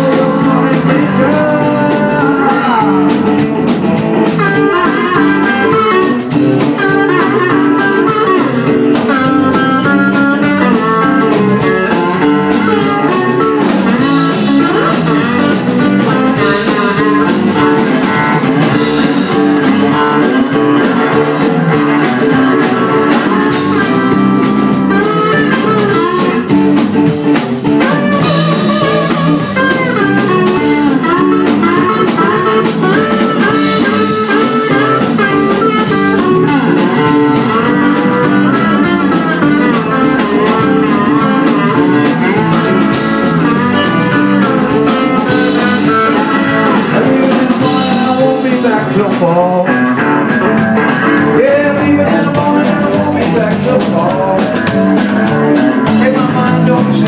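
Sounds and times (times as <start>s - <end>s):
bass: 0.0s - 57.0s
drum kit with cymbals: 0.0s - 57.0s
electric guitars with bent notes: 0.0s - 57.0s.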